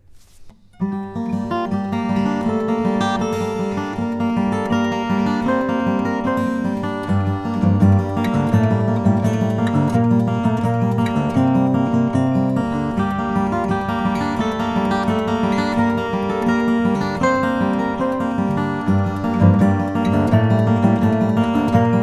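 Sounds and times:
fingerstyle acoustic guitar: 0.0 - 22.0.

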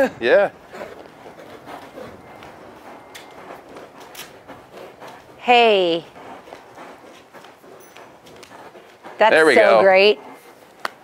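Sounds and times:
hooves scuffing in sand: 0.0 - 11.0
saddle and tack clicks: 0.2 - 11.0.

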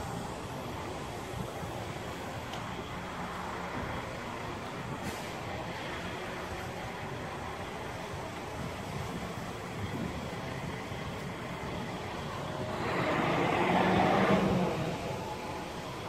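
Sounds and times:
vehicle engine and traffic noise: 0.0 - 16.0.

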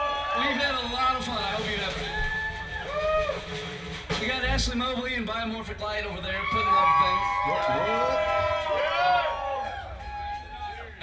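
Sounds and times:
crowd noise: 0.0 - 11.0
man talking through pa microphone: 0.3 - 2.1, 4.1 - 8.4.

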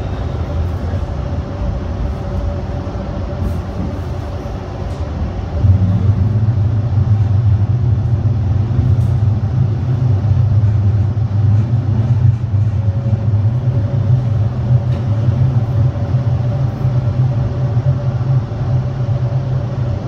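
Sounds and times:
train rumbling in tunnel: 0.0 - 20.0.

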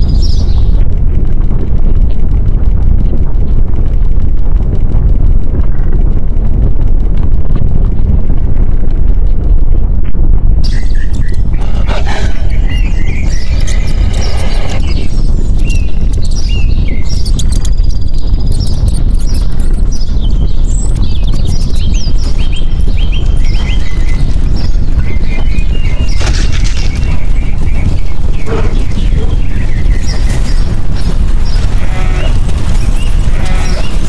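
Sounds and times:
birds chirping: 0.0 - 0.9, 10.6 - 34.0
volcanic eruption rumbling: 0.0 - 34.0.

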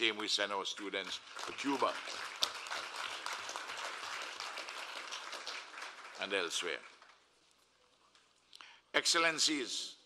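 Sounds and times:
audience applauding: 1.0 - 7.2.

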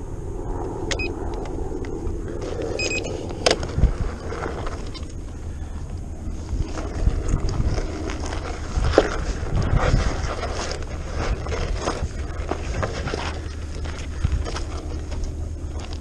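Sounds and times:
tyre rolling over gravel: 2.3 - 16.0.

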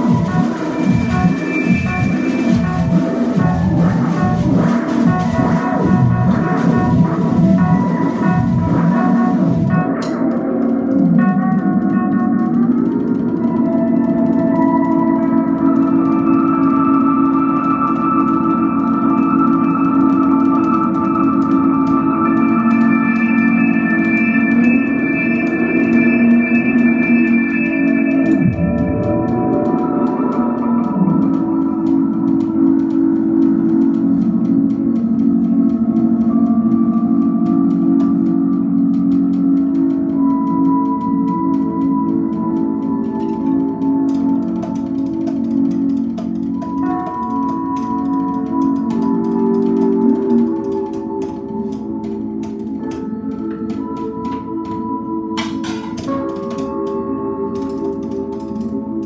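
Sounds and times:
keyboard electronics drone: 0.0 - 59.0.

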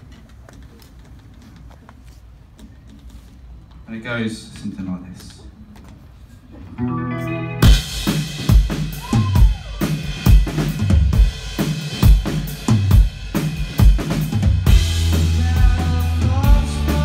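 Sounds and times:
live rock band playing: 6.8 - 17.0.

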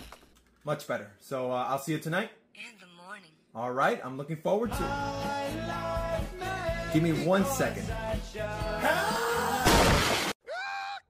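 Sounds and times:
music playing: 4.7 - 9.6
loud shattering crash: 9.6 - 10.4.

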